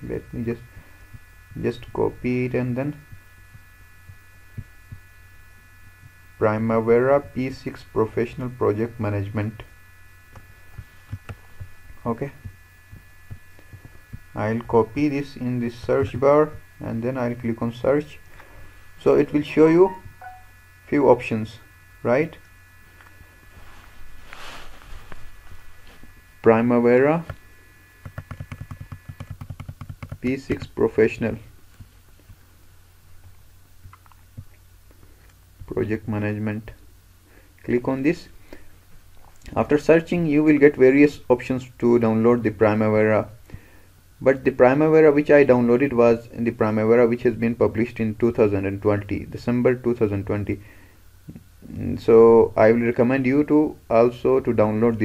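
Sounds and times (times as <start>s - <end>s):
faint high whine: 0.0s - 55.0s
low electrical hum: 0.0s - 55.0s
soft low thumps: 3.1s - 5.0s, 10.7s - 14.8s.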